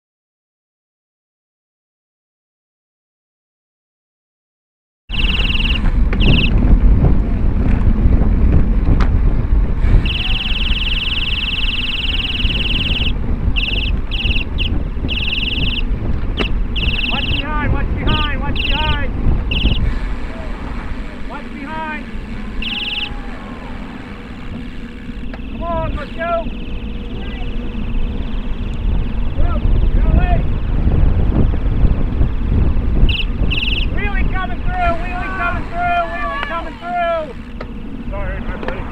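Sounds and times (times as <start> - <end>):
shrill high tone blasts: 5.1 - 6.5, 9.9 - 19.9, 21.9 - 24.3, 33.0 - 37.4
voices calling out: 5.1 - 6.6, 9.8 - 30.6, 33.0 - 38.9
wind buffeting microphone: 5.1 - 38.9.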